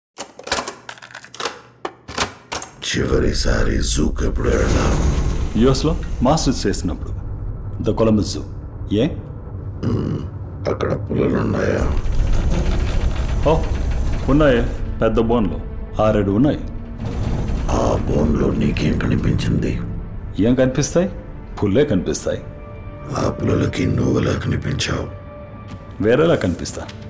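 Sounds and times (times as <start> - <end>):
low rumbling drone: 3.4 - 21.5.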